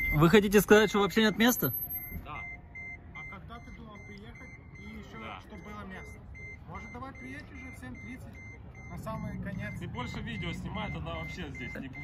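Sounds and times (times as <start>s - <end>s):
vehicle warning beep: 0.0s - 12.0s.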